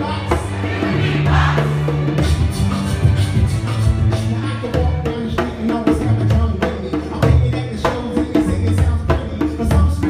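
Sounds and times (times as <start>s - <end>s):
orchestral pop music: 0.0s - 10.0s.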